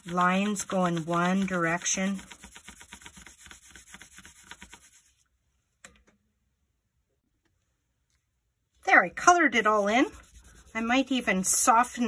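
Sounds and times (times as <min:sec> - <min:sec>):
pencil shading on paper: 0:00.0 - 0:05.2, 0:09.6 - 0:11.8.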